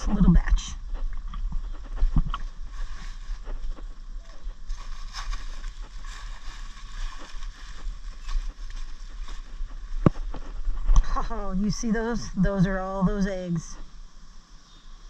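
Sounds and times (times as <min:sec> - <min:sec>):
leaves and stems crackling: 0:00.0 - 0:14.0
wind rumble on microphone: 0:00.0 - 0:14.0.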